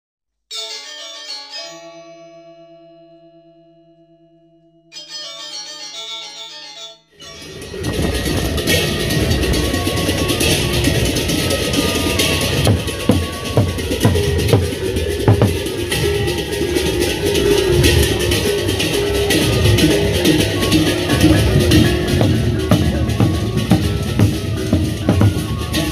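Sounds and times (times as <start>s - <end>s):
pitched musical notes: 4.6s - 25.9s
cymbals crashing: 7.2s - 25.9s
large drums beating: 7.4s - 25.9s.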